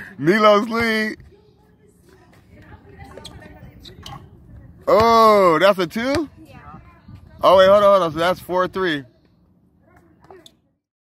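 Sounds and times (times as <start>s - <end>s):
low distant voices: 0.0s - 10.9s.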